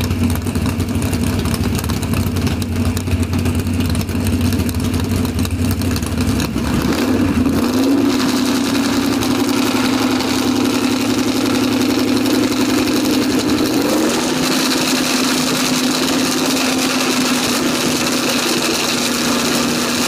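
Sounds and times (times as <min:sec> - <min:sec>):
car engine idling and revving: 0:00.0 - 0:20.0.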